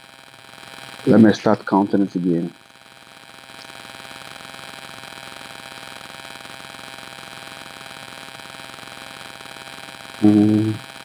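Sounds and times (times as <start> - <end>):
electrical buzz with hiss: 0.0 - 11.0.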